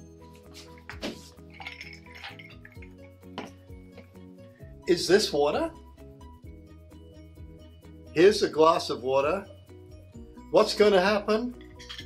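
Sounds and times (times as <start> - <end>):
background music: 0.0 - 12.0
ice cubes clinking in glass: 1.5 - 2.9, 11.6 - 12.0.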